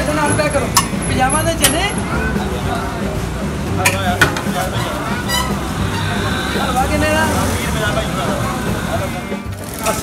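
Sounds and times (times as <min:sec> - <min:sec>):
low traffic rumble: 0:00.0 - 0:10.0
people talking: 0:00.0 - 0:10.0.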